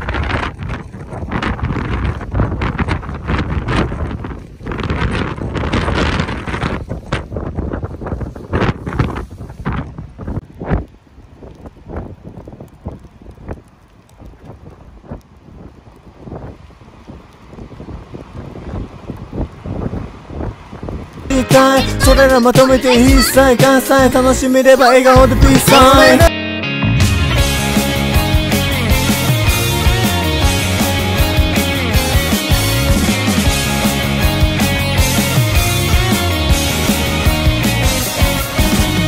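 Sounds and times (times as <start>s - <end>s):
wind buffeting microphone: 0.0s - 21.3s.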